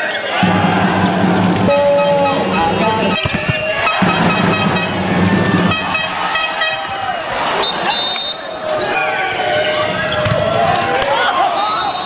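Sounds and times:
crowd noise in a sports hall: 0.0 - 12.0
fans sounding horns: 0.3 - 9.9.

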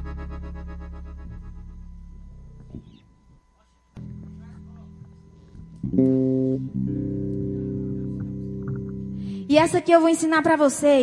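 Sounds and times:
keyboard chord ringing out: 0.0 - 3.4, 4.0 - 9.7.

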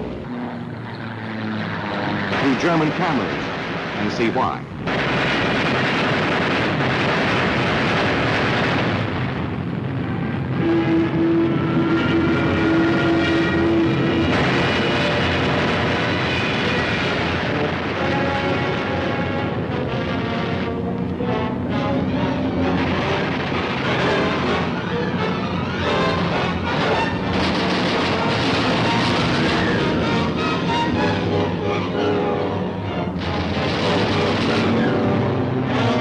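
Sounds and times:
aircraft engines roaring: 0.0 - 36.0
film soundtrack music: 0.0 - 36.0.

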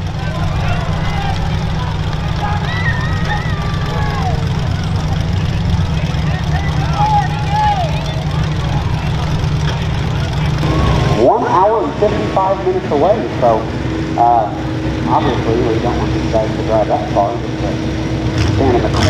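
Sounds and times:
car engines rumbling: 0.0 - 19.0.

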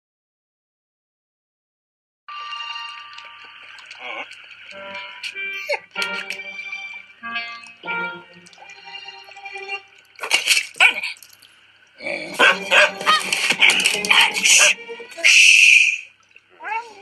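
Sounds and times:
light cartoon music: 2.3 - 10.5, 12.3 - 15.3
small cartoon dog barking: 10.8 - 11.2, 12.3 - 13.4.

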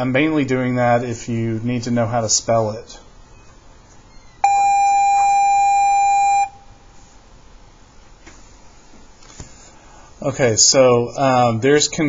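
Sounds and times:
electronic beep: 4.1 - 6.7.

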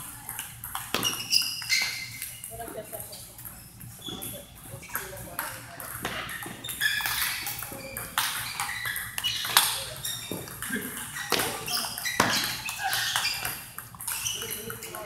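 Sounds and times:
ping pong ball clicking off paddles: 0.2 - 3.6, 4.2 - 15.0
ball bouncing on table: 0.3 - 2.0, 4.1 - 14.9.

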